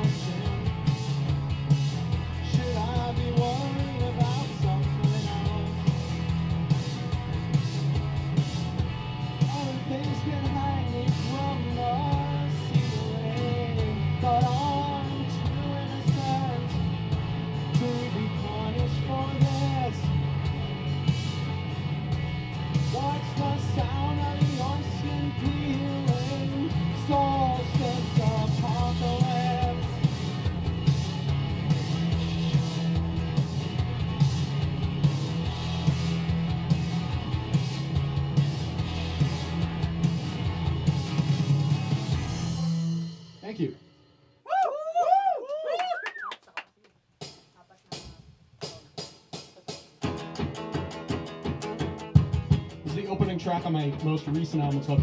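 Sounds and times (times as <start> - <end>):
person singing: 0.0 - 1.0, 2.4 - 6.0, 9.4 - 16.9, 17.6 - 20.2, 22.9 - 30.0
electric guitar: 0.0 - 43.4, 50.0 - 55.0
steady drum beat: 0.0 - 43.8, 47.1 - 55.0.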